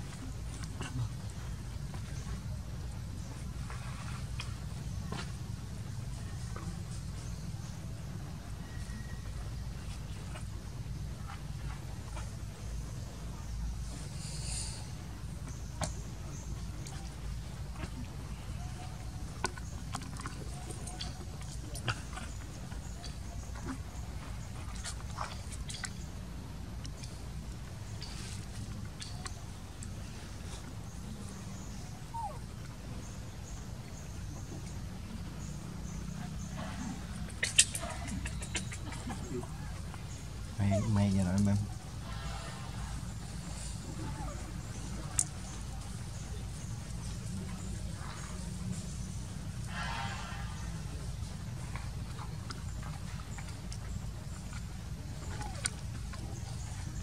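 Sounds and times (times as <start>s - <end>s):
low outdoor rumble: 0.0s - 57.0s.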